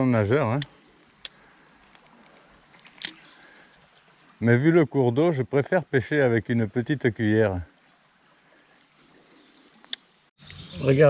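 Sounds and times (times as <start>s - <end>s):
stream flowing hiss: 0.0s - 11.0s.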